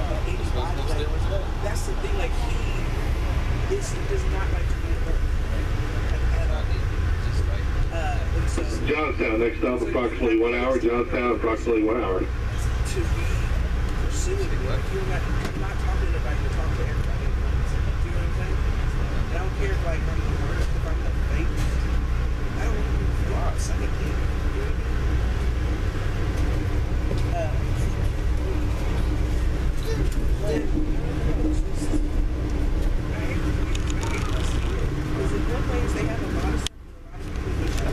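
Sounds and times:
constant hum: 0.0 - 37.9
train rumbling on rails: 0.0 - 37.9.

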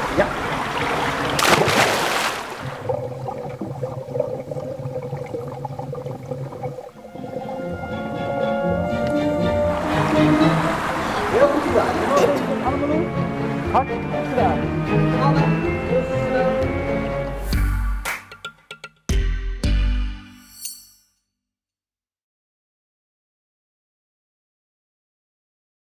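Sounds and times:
water splashing: 0.0 - 8.3, 8.9 - 13.7
calm background music: 6.9 - 18.0.

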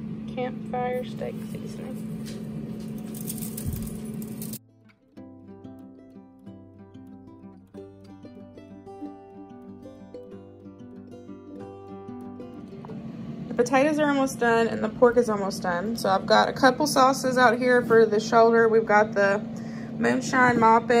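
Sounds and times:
kitchen room hum: 0.0 - 4.6, 9.0 - 21.0
quiet instrumental background music: 4.4 - 14.1.

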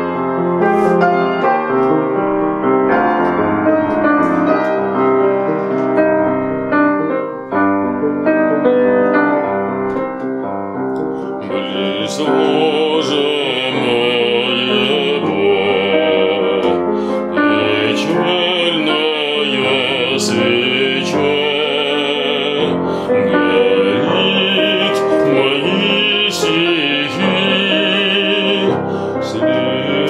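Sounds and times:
piano broken-chord accompaniment: 0.0 - 30.0
classical singer with vibrato: 11.3 - 30.0.

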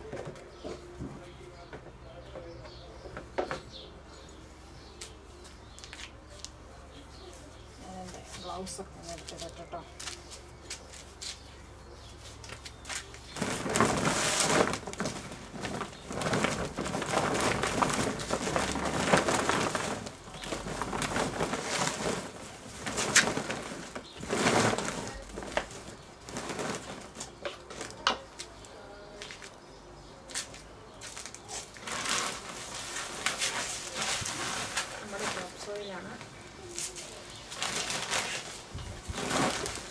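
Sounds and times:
plastic tarpaulin rustling: 0.0 - 39.9.

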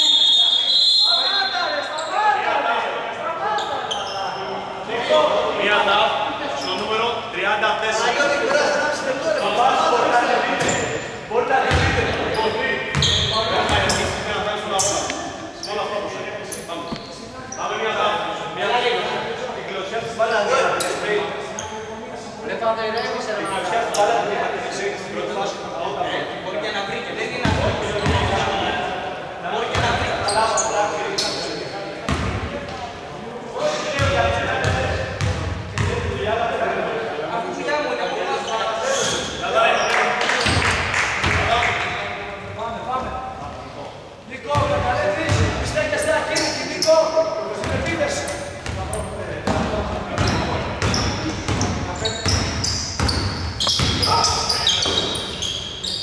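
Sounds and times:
basketball bouncing echoing: 11.7 - 14.2, 27.4 - 28.4, 32.1 - 32.7, 34.0 - 36.2, 44.6 - 45.8, 48.6 - 55.8
voices calling out: 50.2 - 56.0.

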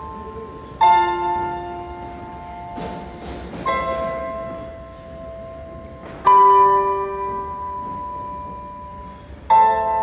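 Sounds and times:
keyboard playing sustained chords: 0.0 - 10.0.

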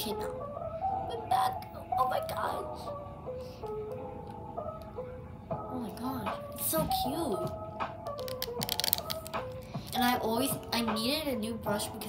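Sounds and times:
background music: 0.0 - 12.0
plastic hairbrush clicking: 8.1 - 9.4.

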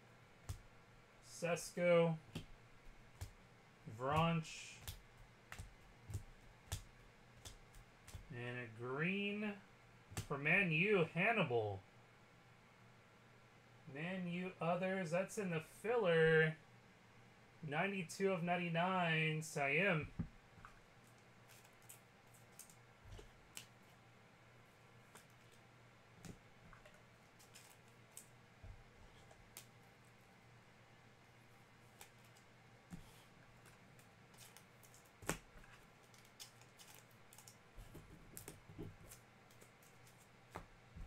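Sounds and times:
low steady hum: 0.0 - 41.0
faint clicks and taps: 4.1 - 8.3.

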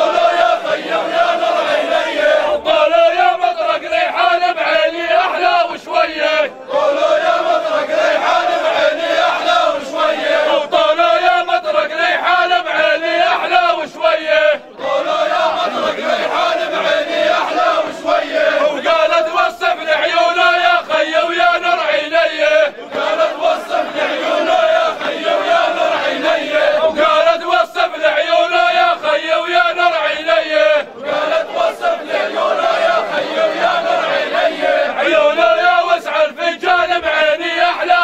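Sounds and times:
men chanting in unison: 0.0 - 38.0.

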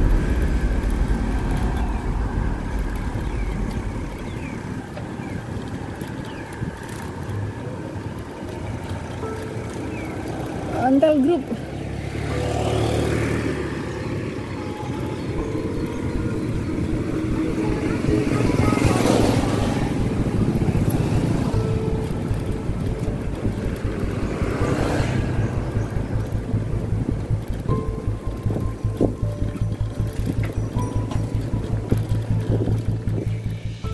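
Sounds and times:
music with steady beat: 0.0 - 4.8, 15.4 - 33.9
synth sweeps: 0.0 - 5.9, 12.2 - 33.9.

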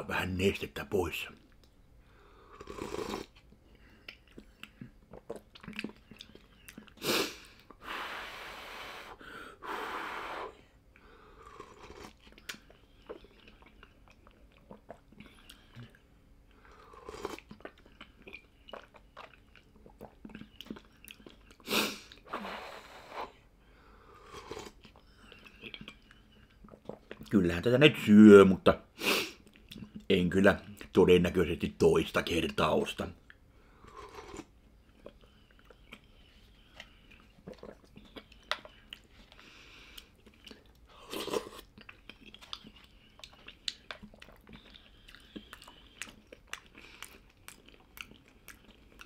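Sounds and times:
person slurping soup: 2.5 - 3.4, 11.3 - 13.6, 16.6 - 17.7, 24.0 - 24.8, 33.8 - 34.5, 40.9 - 41.8
chewing: 2.6 - 7.8, 11.4 - 22.2, 24.2 - 27.3, 33.3 - 49.0
wet mouth clicks: 34.2 - 39.1, 39.9 - 49.0.

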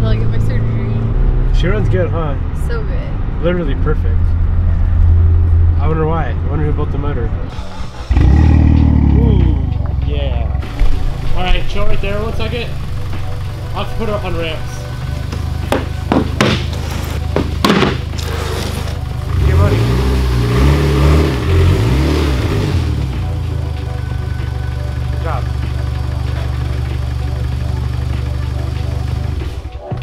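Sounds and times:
car engine idling and revving: 0.0 - 30.0
sharp knocks: 15.4 - 18.2.

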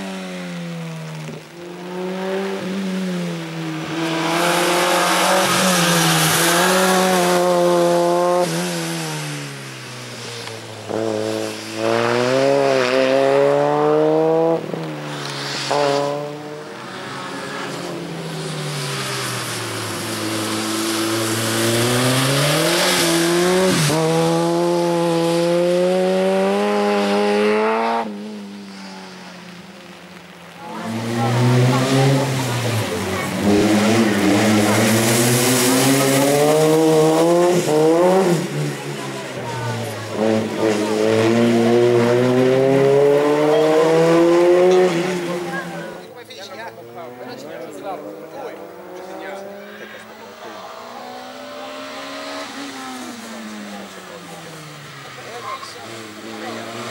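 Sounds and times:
car engine revving high: 0.0 - 28.6, 30.2 - 46.0, 46.6 - 56.9.

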